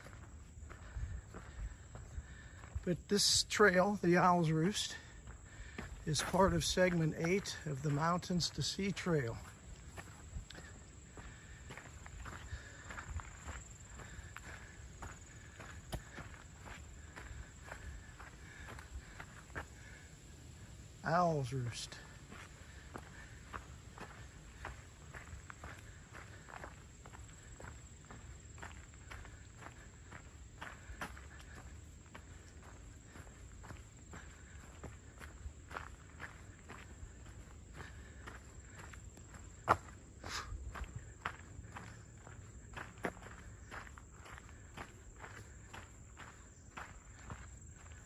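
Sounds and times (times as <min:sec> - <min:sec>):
footsteps on dry leaves: 0:02.4 - 0:19.8.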